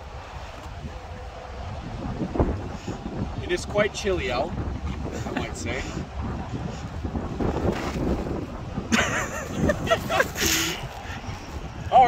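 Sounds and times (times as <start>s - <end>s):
wind buffeting microphone: 0.0s - 12.0s
man laughing: 4.9s - 6.0s, 8.8s - 11.2s.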